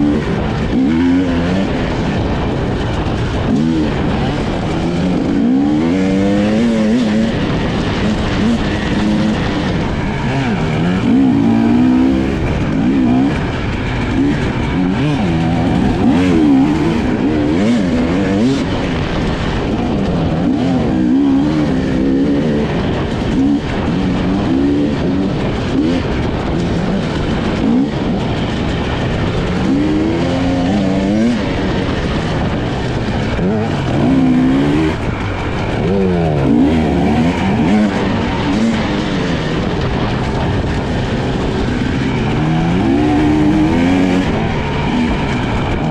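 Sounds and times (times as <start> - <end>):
motorcycle engine revving: 0.0 - 45.9.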